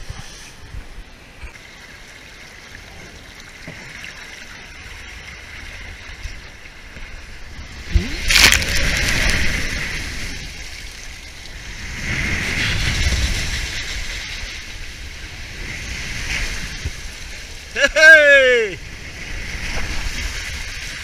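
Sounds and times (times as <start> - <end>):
water rushing and splashing: 0.0 - 21.0.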